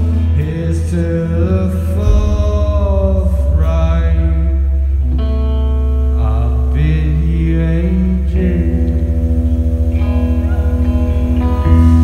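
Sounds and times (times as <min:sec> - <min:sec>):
live rock band playing: 0:00.0 - 0:12.0
person singing: 0:00.0 - 0:12.0.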